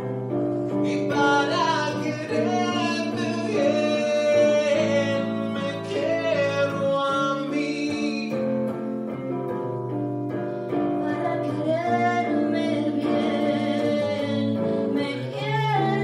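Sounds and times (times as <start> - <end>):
person singing tango: 0.0 - 16.0
plucked electric guitar chords: 0.0 - 16.0.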